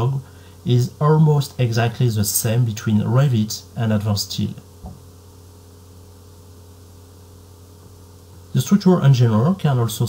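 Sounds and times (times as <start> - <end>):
faint hiss: 0.0 - 10.0
low electrical hum: 0.0 - 10.0.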